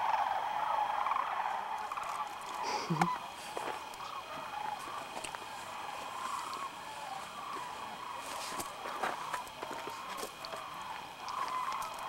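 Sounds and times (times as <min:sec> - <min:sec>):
sandhill cranes calling: 0:00.0 - 0:12.0.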